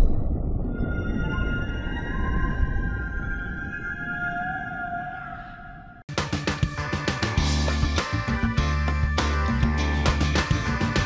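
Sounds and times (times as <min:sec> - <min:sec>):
low rumble: 0:00.0 - 0:04.5.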